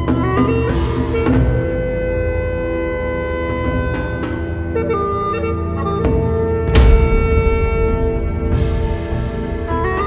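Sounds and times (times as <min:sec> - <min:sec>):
dark orchestral held chord: 0:06.8 - 0:10.0.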